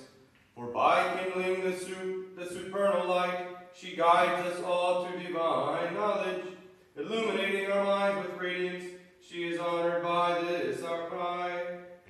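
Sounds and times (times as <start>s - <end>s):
man chanting on one pitch: 7.0s - 11.7s.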